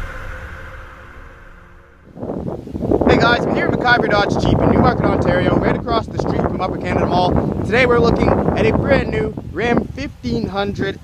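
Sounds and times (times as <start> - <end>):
music intro: 0.0 - 3.1
wind rumbling on microphone: 0.0 - 11.0.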